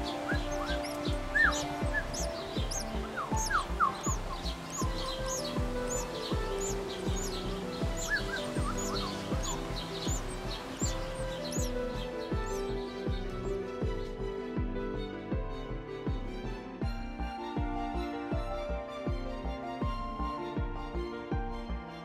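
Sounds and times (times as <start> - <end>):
nestlings chirping: 0.0 - 14.2
background music: 0.0 - 22.0.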